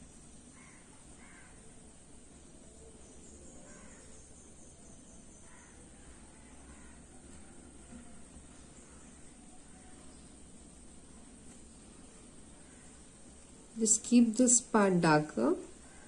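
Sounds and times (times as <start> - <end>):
background hiss: 0.0 - 16.0
distant bird calls: 0.5 - 1.8, 3.5 - 10.6.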